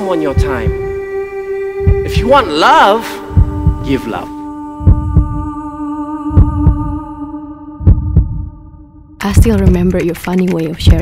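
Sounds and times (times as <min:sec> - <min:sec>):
steady drone: 0:00.0 - 0:09.8.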